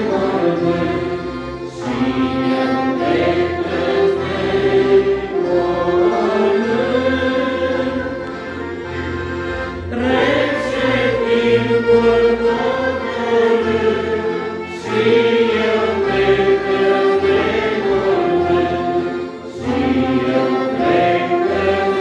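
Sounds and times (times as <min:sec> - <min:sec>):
folk church band playing: 0:00.0 - 0:22.0
voices singing a hymn: 0:00.0 - 0:22.0.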